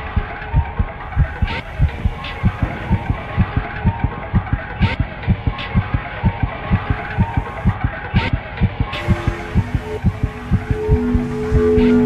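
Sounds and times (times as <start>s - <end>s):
held music notes: 0.0s - 12.0s
low throbbing pulse: 0.0s - 12.0s.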